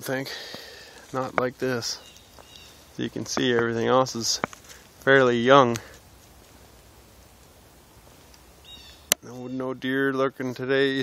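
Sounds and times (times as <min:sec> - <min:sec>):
faint woodland ambience: 0:00.0 - 0:11.0
high bird call: 0:08.6 - 0:09.8.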